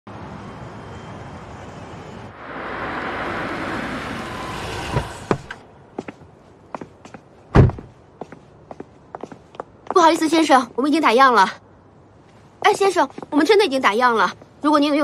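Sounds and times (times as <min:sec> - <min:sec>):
city traffic: 0:00.0 - 0:15.0
hard-soled footsteps: 0:05.2 - 0:10.0
car doors thunking: 0:07.5 - 0:07.9
heavy thud: 0:07.6 - 0:07.9.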